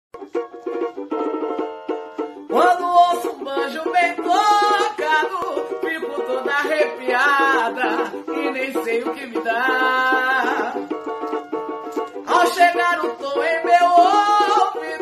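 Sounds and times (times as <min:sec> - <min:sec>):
plucked string accompaniment: 0:00.2 - 0:15.0
woman singing: 0:02.5 - 0:10.9, 0:12.3 - 0:15.0.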